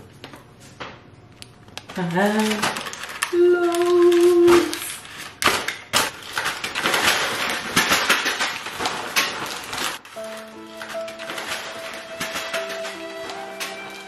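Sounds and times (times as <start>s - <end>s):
packets tapping and clattering: 1.8s - 14.0s
paper and plastic bags rustling: 1.8s - 14.0s
music with held notes: 10.1s - 14.0s.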